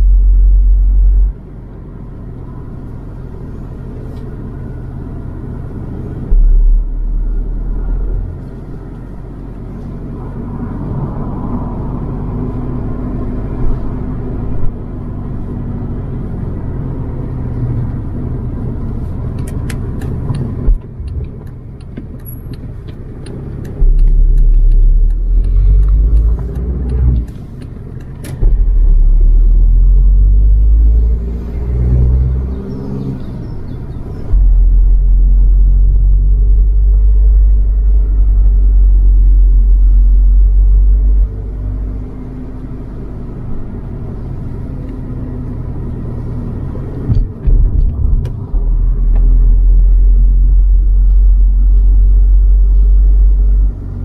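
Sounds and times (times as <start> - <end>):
car engine and tyre rumble: 0.0 - 54.0
heavy low rumble: 4.7 - 32.1, 33.2 - 42.4, 43.0 - 54.0.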